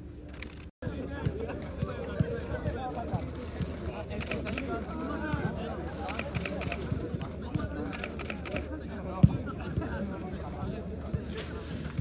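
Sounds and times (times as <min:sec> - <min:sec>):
voices outdoors: 0:00.4 - 0:12.0
rapid sharp clicking: 0:03.4 - 0:04.8.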